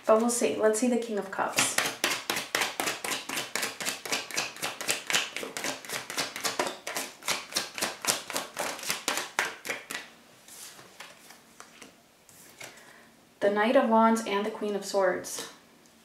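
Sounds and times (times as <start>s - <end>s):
cards being shuffled: 1.6s - 12.8s.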